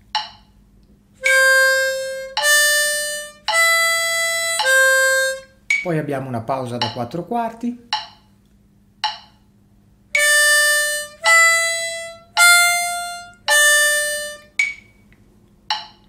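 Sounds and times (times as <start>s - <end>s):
harmonica notes: 1.2s - 5.7s, 10.2s - 14.7s.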